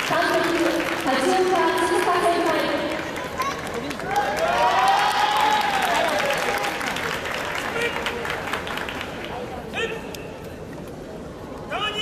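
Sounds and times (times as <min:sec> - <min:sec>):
crowd clapping: 0:00.0 - 0:09.5.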